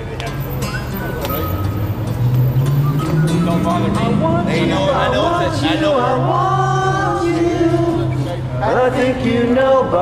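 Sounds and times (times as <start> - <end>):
faint group voices: 0.0 - 10.0
vehicle engine accelerating: 0.3 - 9.5.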